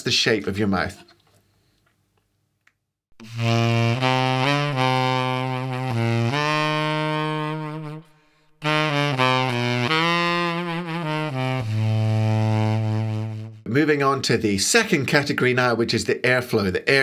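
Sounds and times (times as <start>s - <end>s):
tenor saxophone low notes: 3.2s - 13.8s.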